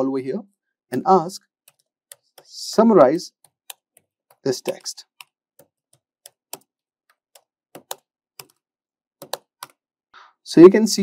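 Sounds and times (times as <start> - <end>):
keyboard key clicks: 3.5 - 8.6, 9.2 - 9.8.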